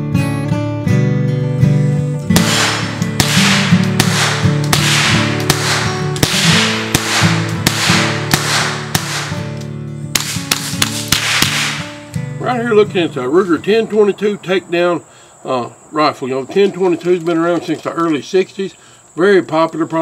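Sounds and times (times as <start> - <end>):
acoustic guitar music: 0.0 - 15.0
rifle shots: 2.3 - 9.5, 10.1 - 12.0.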